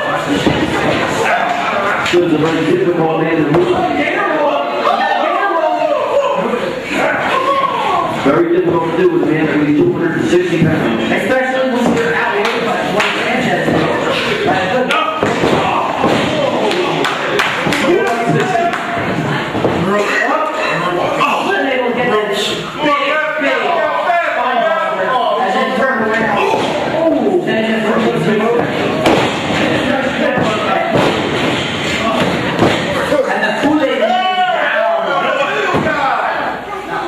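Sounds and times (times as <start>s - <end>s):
haze of voices in hall: 0.0s - 37.0s.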